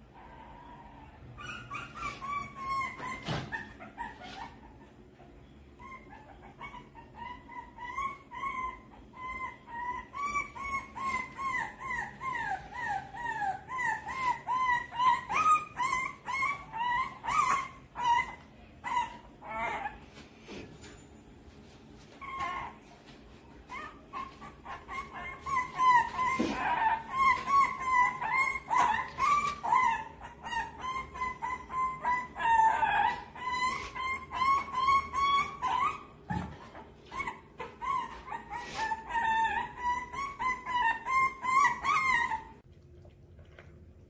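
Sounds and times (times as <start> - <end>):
puppy yipping: 0.0 - 20.3, 22.0 - 42.6.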